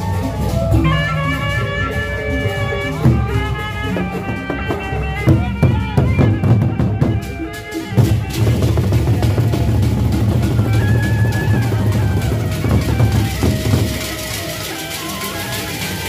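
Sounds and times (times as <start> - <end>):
barrel drums beaten with sticks: 3.0 - 15.5.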